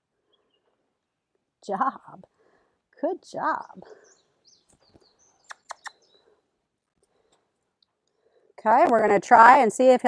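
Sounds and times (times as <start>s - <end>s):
birds chirping: 3.2s - 7.5s
sharp clicks: 4.7s - 6.0s.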